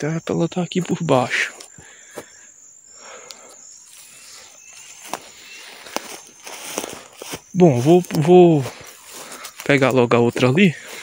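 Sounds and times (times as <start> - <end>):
insects chirping: 0.0 - 11.0
steps in dry grass: 3.9 - 11.0.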